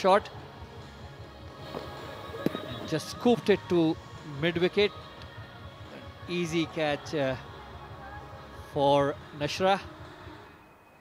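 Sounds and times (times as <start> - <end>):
stadium background: 0.0 - 11.0.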